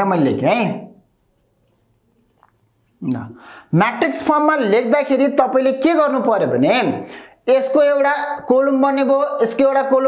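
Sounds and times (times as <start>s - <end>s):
marker scratching on whiteboard: 1.0s - 3.4s.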